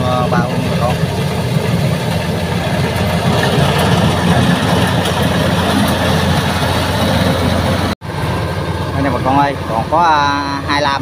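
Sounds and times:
combine harvester engine drone: 0:00.0 - 0:11.0.

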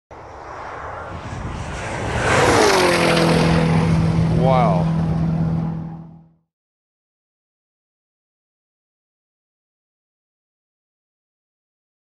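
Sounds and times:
car passing at high speed: 0:00.1 - 0:06.4.

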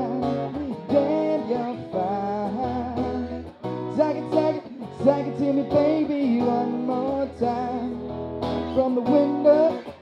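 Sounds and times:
acoustic guitar strumming: 0:00.0 - 0:10.0
man singing: 0:00.0 - 0:10.0.

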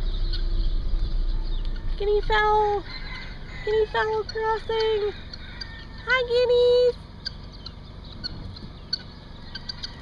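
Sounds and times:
guinea fowl calling: 0:00.0 - 0:10.0.

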